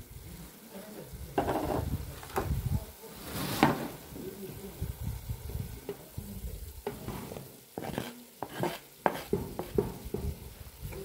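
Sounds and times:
spoon scraping cooking pot: 6.8 - 10.3.

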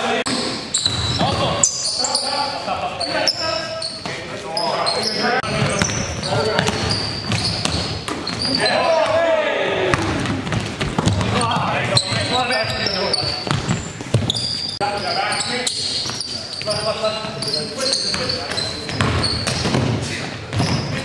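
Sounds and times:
sneakers squeaking: 0.3 - 9.3, 9.9 - 21.0
basketball bouncing on wooden floor: 5.5 - 9.2, 9.9 - 12.8, 13.4 - 14.5, 18.1 - 21.0
players shouting indistinctly: 8.5 - 10.2.

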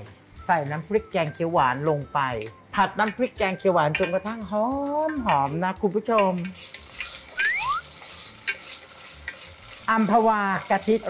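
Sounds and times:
spoon clicking against pan: 3.9 - 4.2, 6.1 - 7.2
curry paste sizzling in oil: 6.3 - 11.0.

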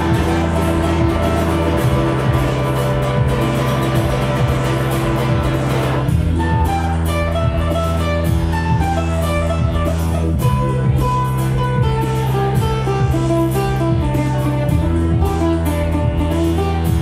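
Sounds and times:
acoustic guitar: 0.0 - 17.0
looped bass line: 0.0 - 17.0
picked melody notes: 0.0 - 17.0
steady percussion beat: 0.0 - 17.0.

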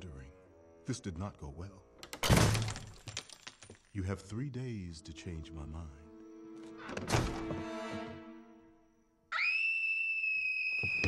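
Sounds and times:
high whistling tone: 9.3 - 11.0.

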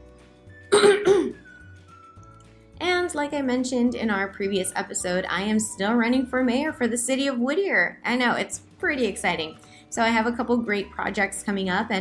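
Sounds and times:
faint background music: 0.0 - 12.0
woman clearing her throat: 0.7 - 1.4.

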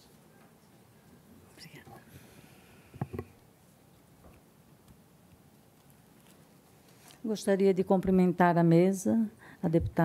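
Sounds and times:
faint whispered speech: 1.5 - 2.1
microphone handling noise: 3.0 - 3.3.

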